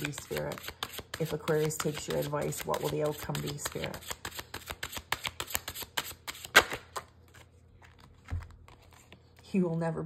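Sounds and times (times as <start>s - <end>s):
cards being shuffled: 0.0s - 9.5s.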